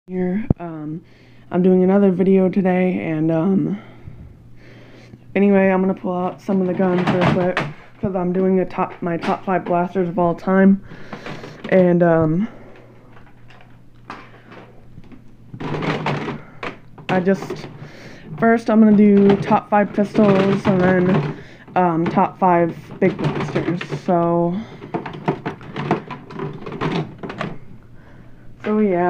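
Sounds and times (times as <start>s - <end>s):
plastic toys rattling in a bin: 5.7s - 12.0s, 12.7s - 27.7s
plastic toy blasters clattering: 18.4s - 27.6s.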